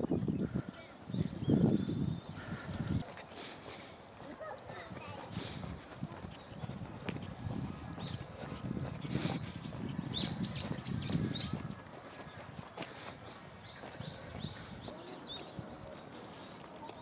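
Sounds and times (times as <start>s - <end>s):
footsteps on stone steps: 3.0s - 17.0s.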